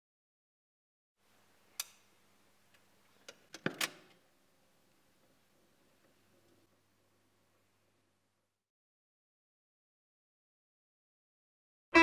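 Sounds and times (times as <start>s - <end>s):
faint electrical hum: 1.2s - 8.6s.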